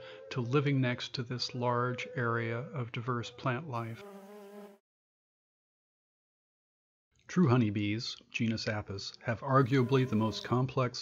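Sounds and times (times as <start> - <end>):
bee wings buzzing: 3.8 - 4.8, 9.6 - 10.6.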